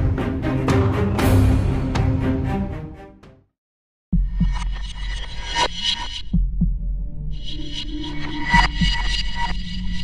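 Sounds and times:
heartbeat-like double thump: 0:06.3 - 0:07.0.

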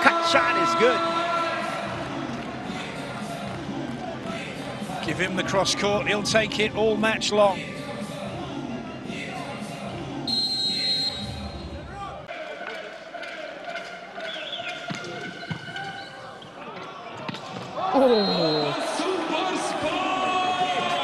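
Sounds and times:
arena crowd noise: 0:00.0 - 0:21.0.

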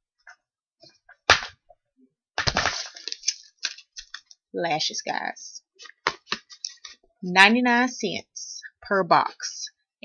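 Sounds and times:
sharp knock: 0:01.3 - 0:01.6.

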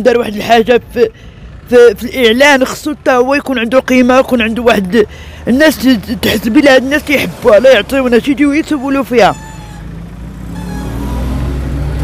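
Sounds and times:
vehicle engine accelerating: 0:03.9 - 0:12.0.

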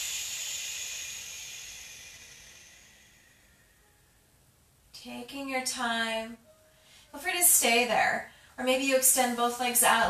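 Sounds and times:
hissing breath out: 0:00.0 - 0:04.0.

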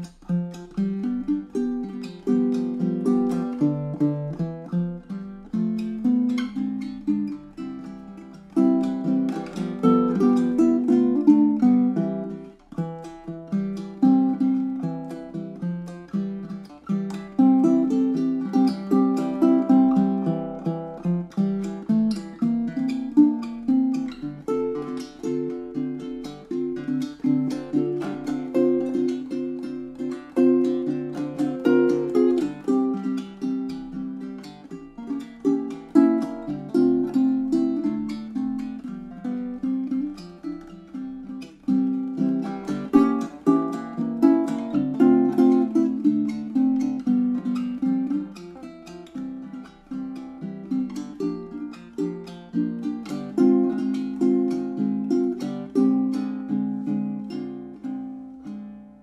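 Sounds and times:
fingerstyle ukulele playing: 0:00.0 - 0:59.0.

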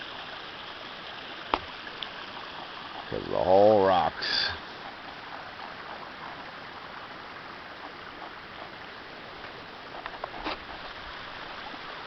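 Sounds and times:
distant streams rushing: 0:00.0 - 0:12.0.

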